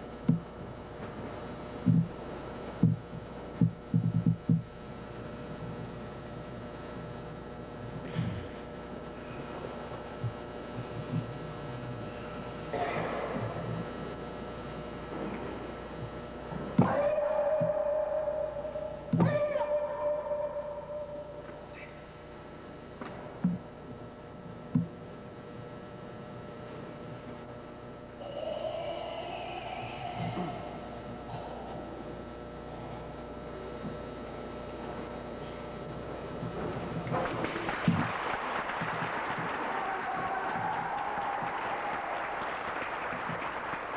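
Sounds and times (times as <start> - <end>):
videotape hum and hiss: 0.0 - 43.9
audience applauding: 37.1 - 43.9.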